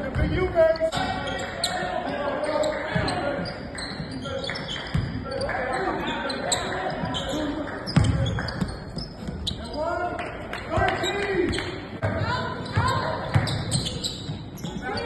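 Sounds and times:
sneakers squeaking: 0:00.0 - 0:15.0.

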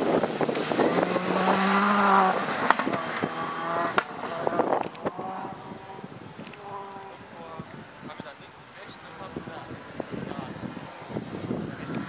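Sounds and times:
rally car engine at high revs: 0:00.0 - 0:07.3
distant rally car: 0:00.0 - 0:12.0.

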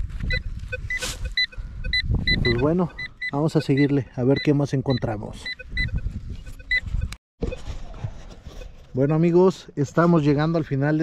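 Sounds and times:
metal detector beep: 0:00.2 - 0:07.6.

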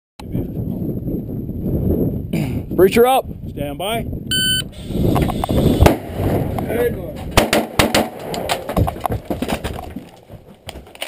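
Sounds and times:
wind rumble on microphone: 0:00.2 - 0:10.4.

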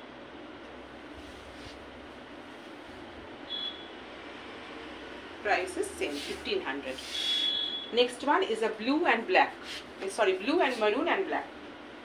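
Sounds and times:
room noise: 0:00.0 - 0:12.0
high-pitched electronic beep: 0:07.4 - 0:08.0.

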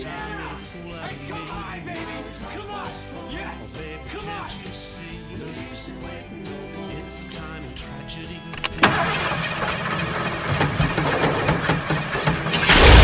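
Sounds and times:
music: 0:00.0 - 0:13.0
engine starting: 0:08.5 - 0:13.0.

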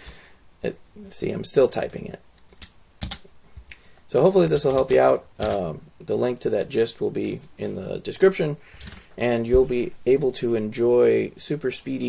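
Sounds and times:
computer keyboard keystrokes: 0:02.4 - 0:03.3, 0:04.4 - 0:05.6.

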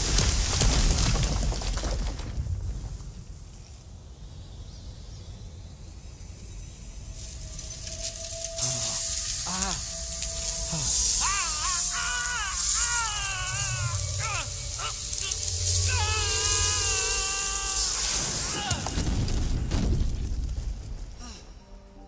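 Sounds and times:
loud rushing hiss: 0:05.6 - 0:21.6
film soundtrack music: 0:07.1 - 0:20.0.

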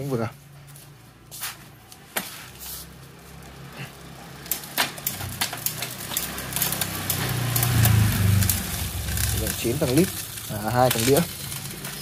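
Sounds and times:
spinning bicycle wheel whirring: 0:02.5 - 0:12.0
bicycle chain clicking: 0:02.8 - 0:12.0.

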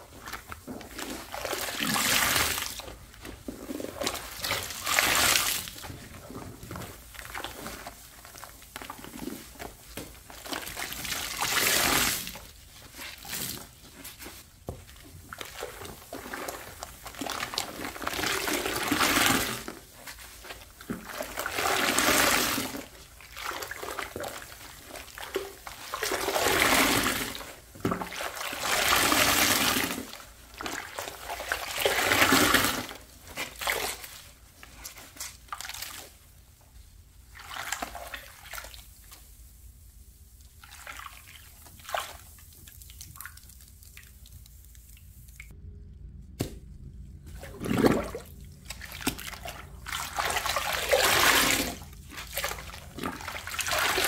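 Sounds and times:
sponge squeezed in sudsy water: 0:00.0 - 0:36.4, 0:37.2 - 0:45.0, 0:47.3 - 0:54.0.

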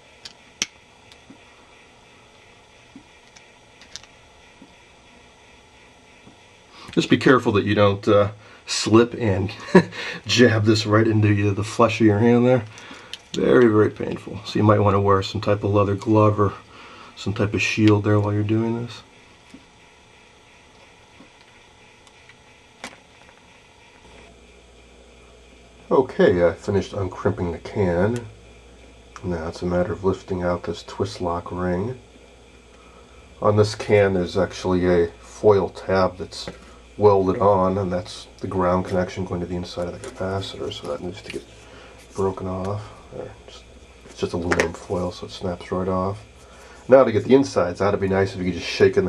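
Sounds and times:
faint steady hiss: 0:00.0 - 0:49.0.

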